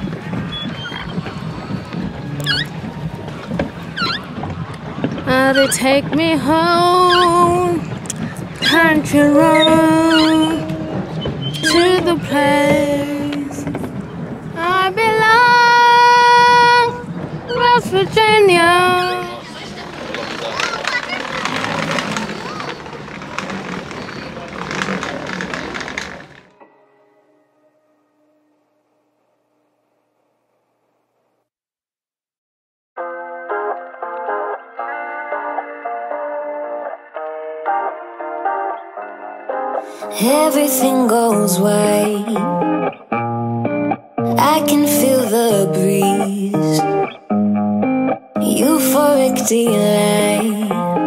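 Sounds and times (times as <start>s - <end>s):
short high squeak: 2.4s - 2.8s, 4.0s - 4.3s, 8.6s - 12.0s
indistinct voices: 4.0s - 14.0s, 14.6s - 26.4s, 44.2s - 47.1s, 48.4s - 51.0s
clattering and rustling: 19.7s - 26.5s.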